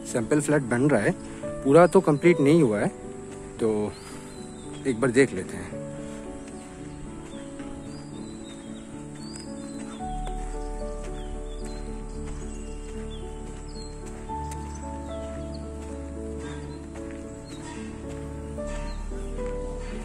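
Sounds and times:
bird chirps: 0:00.0 - 0:20.0.

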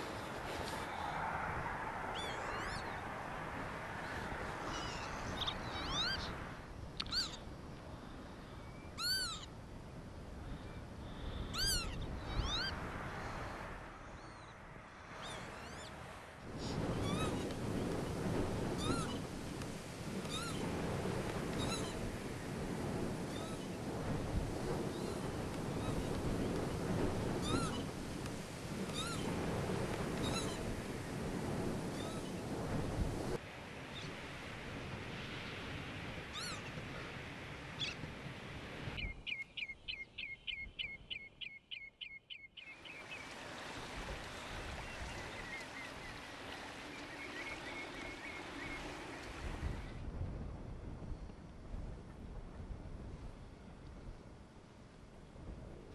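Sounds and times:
lapwings calling: 0:04.6 - 0:06.3, 0:07.0 - 0:07.4, 0:09.0 - 0:09.5, 0:20.2 - 0:20.7, 0:21.5 - 0:22.5, 0:27.4 - 0:29.4, 0:30.2 - 0:30.8, 0:36.3 - 0:36.8.

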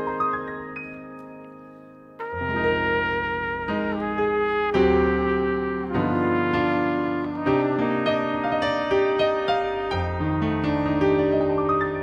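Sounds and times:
digital piano chords and bass: 0:00.0 - 0:12.0
trumpet slow melody: 0:02.2 - 0:12.0.

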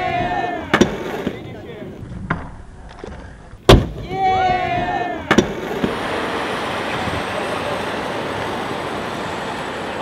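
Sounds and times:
steady roar of background noise: 0:04.1 - 0:10.0
faint voices: 0:06.3 - 0:10.0.

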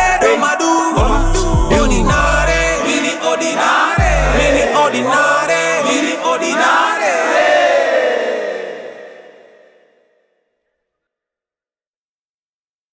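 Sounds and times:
chanted rap vocals: 0:00.0 - 0:09.8.

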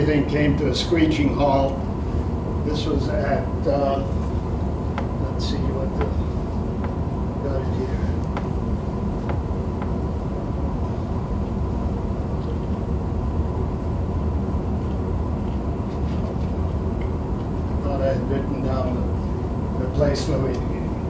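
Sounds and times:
low room rumble: 0:00.0 - 0:21.0
thin steady hum: 0:00.0 - 0:21.0.

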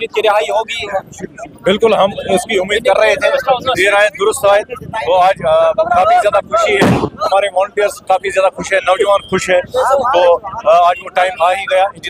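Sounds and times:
men talking: 0:00.0 - 0:12.0
firecracker bang: 0:06.8 - 0:07.2.

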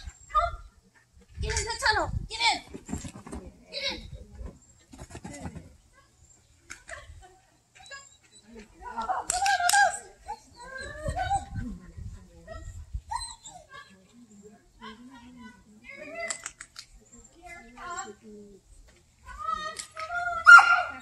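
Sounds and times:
woman calling to dog: 0:06.9 - 0:16.4, 0:19.2 - 0:21.0.

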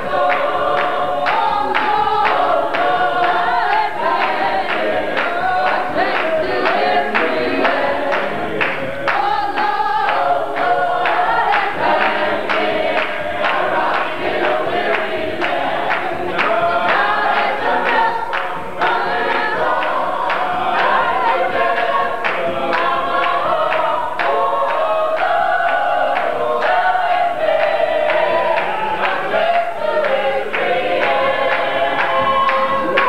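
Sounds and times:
choir singing a hymn: 0:00.0 - 0:33.0.

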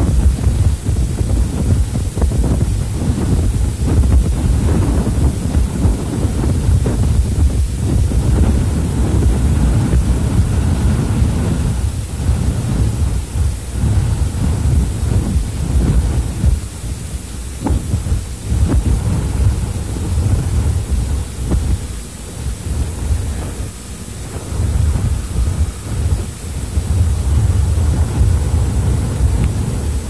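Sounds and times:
wind buffeting microphone: 0:00.0 - 0:30.0.

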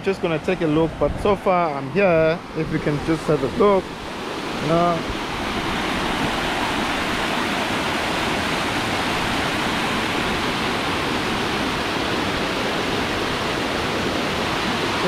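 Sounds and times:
waterfall rushing and splashing: 0:00.0 - 0:15.0.

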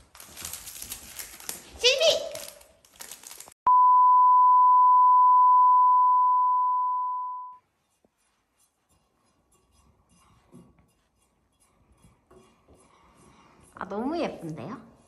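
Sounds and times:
electronic censor bleep: 0:03.7 - 0:07.6.

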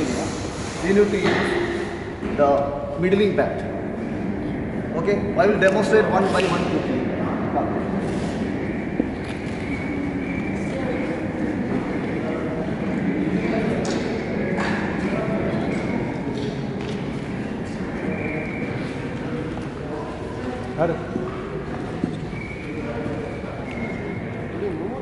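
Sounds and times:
boys chattering in echoing hall: 0:00.0 - 0:25.0.

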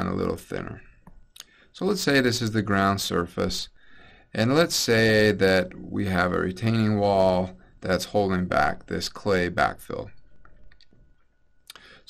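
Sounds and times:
person speaking: 0:00.0 - 0:03.7
faint steady high tone: 0:00.0 - 0:12.0.

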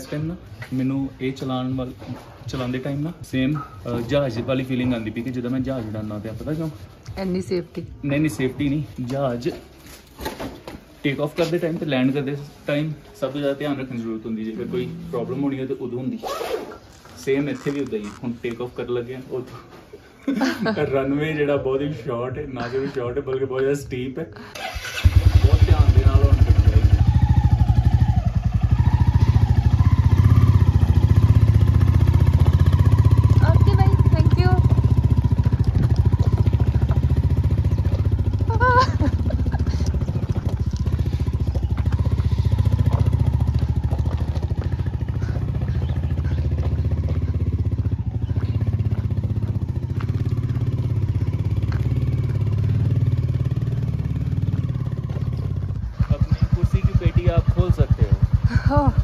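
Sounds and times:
motorcycle engine running: 0:24.6 - 0:59.0.

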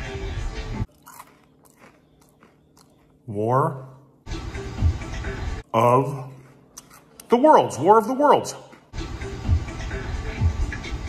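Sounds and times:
man chewing: 0:00.8 - 0:03.3, 0:06.0 - 0:07.4, 0:08.5 - 0:09.3.

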